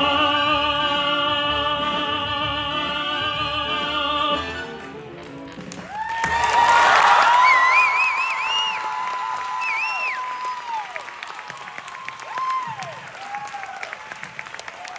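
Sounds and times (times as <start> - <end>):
audience applauding and cheering: 4.8 - 14.9
high whoops and calls: 5.9 - 14.0.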